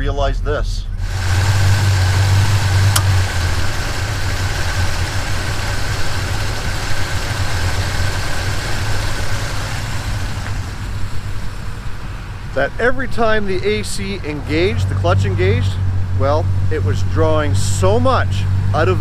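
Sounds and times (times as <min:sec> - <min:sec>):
faint steady whine: 0:00.3 - 0:14.8
car engine idling: 0:00.5 - 0:19.0
compressor clutch click: 0:02.7 - 0:03.7.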